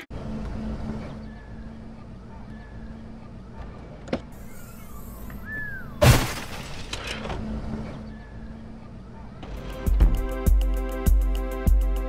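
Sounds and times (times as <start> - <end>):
computer monitor crashing on pavement: 6.0 - 7.3.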